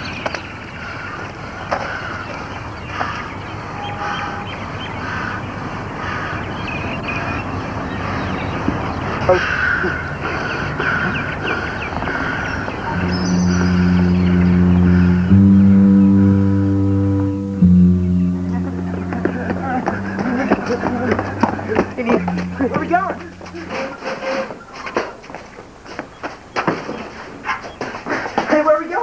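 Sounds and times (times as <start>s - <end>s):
music with low held chords: 12.9s - 24.2s.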